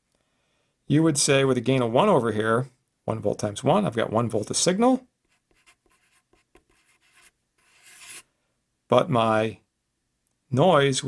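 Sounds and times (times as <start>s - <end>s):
marker scratching on paper: 5.3s - 8.3s.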